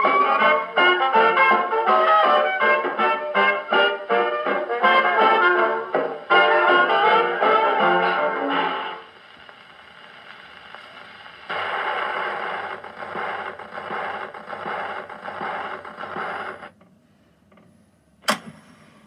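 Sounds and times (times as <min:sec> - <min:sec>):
faint record hiss: 0:00.0 - 0:19.0
record needle scratchy swish: 0:08.5 - 0:16.7.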